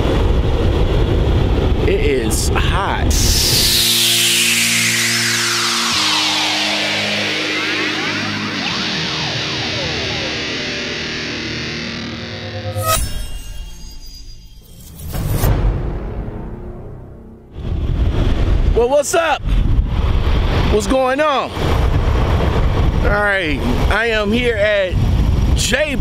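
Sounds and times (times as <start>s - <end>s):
long falling whoosh: 2.5s - 18.8s
sharp hit with ringing tail: 3.0s - 17.8s
electric guitar chords: 3.1s - 13.8s.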